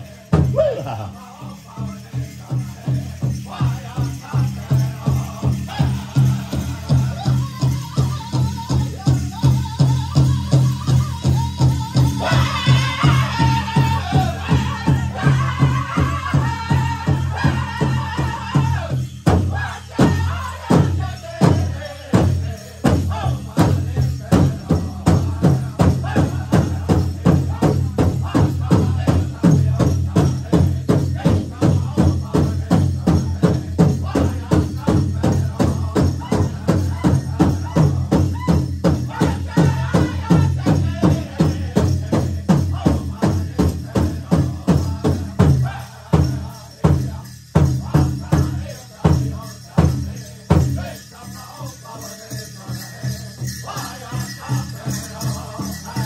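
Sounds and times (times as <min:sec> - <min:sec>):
singers singing: 0:00.0 - 0:56.0.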